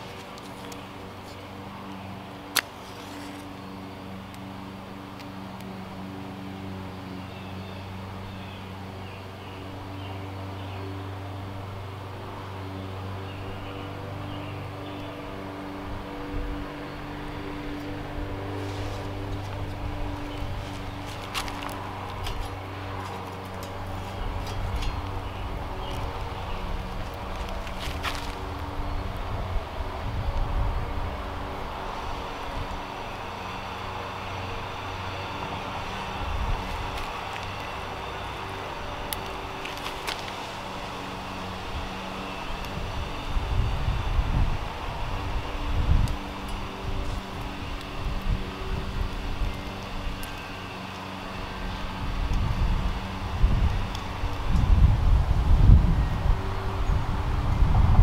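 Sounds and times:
matches being struck: 2.5s - 3.5s, 39.0s - 40.4s
wind buffeting microphone: 15.2s - 50.2s, 51.4s - 58.0s.

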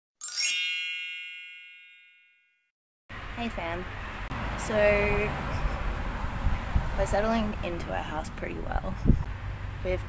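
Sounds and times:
bright bell-like chime: 0.2s - 2.6s.

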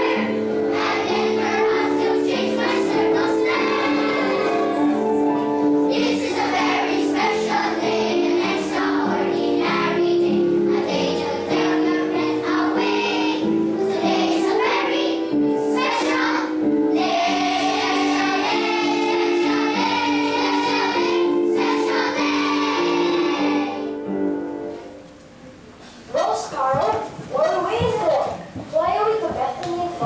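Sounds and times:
children's choir singing: 0.0s - 25.0s
musical accompaniment: 0.0s - 25.9s.

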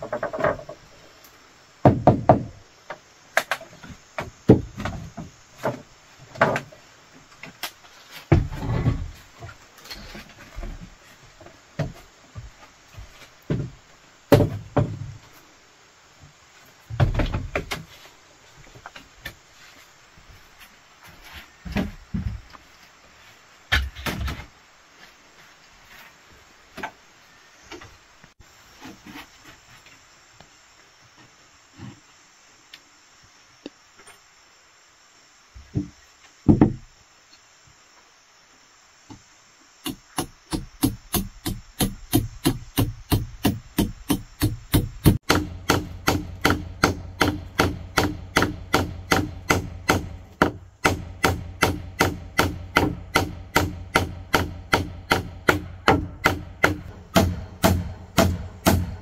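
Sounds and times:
bamboo and wood clattering: 0.0s - 1.2s, 1.8s - 15.4s, 16.8s - 19.8s.

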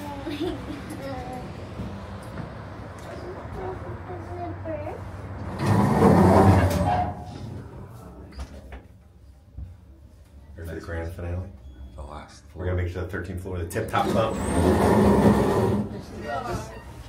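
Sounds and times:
elevator doors sliding: 5.4s - 8.4s, 13.9s - 17.0s.

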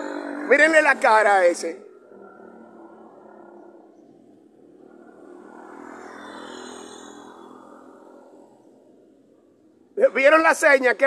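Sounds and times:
vehicle passing: 0.0s - 9.3s.

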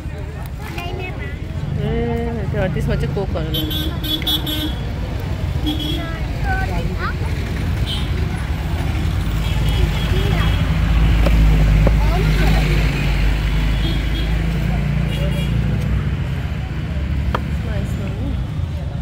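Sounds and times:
heavy engine rumble: 0.0s - 19.0s
vehicle engines running: 0.0s - 19.0s
car horn: 3.5s - 4.9s, 5.6s - 6.2s.

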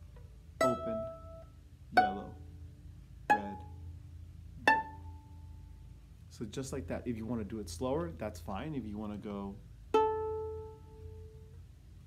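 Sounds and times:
violin pizzicato pluck: 0.0s - 5.9s, 9.9s - 11.6s.

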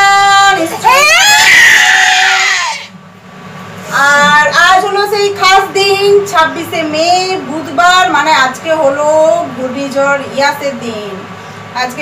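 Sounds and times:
child crying out: 0.8s - 2.9s.

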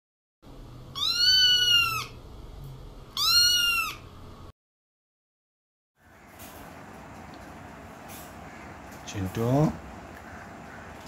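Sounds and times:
kitten meowing: 0.9s - 2.2s, 3.1s - 4.1s.

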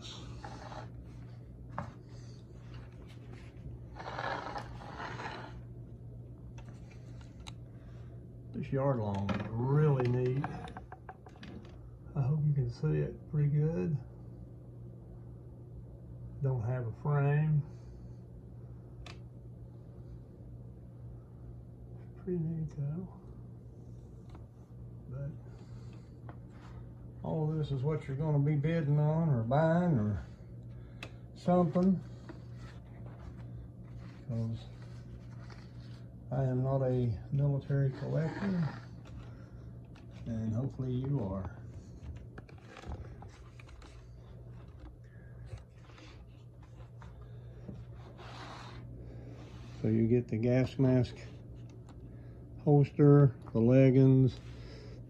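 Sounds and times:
steady low hum: 0.0s - 55.0s
photographs scraping across tabletop: 0.2s - 1.2s, 2.6s - 5.6s, 37.8s - 39.2s, 47.9s - 49.9s
paper photographs rustling: 30.1s - 52.0s
cardboard folder being handled: 39.9s - 48.9s.

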